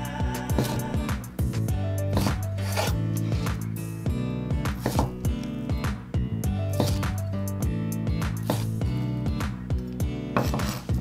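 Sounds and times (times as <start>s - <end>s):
background music: 0.0s - 11.0s
knife chopping on wooden board: 2.1s - 3.6s, 4.7s - 5.3s, 6.7s - 7.2s, 8.2s - 8.8s, 10.3s - 11.0s.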